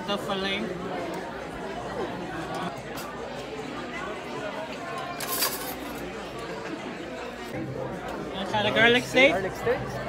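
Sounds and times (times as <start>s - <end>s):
restaurant chatter: 0.0s - 10.0s
cutlery clatter: 4.9s - 6.1s.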